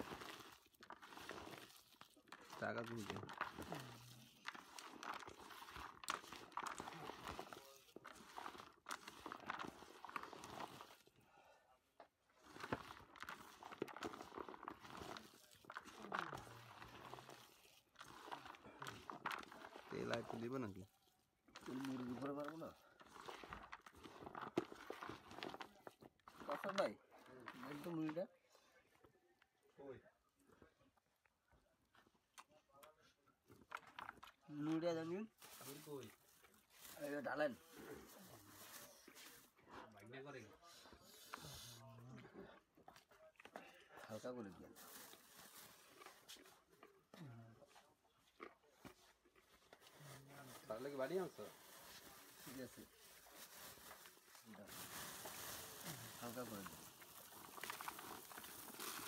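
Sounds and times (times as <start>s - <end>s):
puffed rice rustling in plastic bowl: 0.0s - 11.2s, 12.0s - 28.3s, 33.6s - 39.6s, 44.1s - 46.8s, 48.9s - 59.0s.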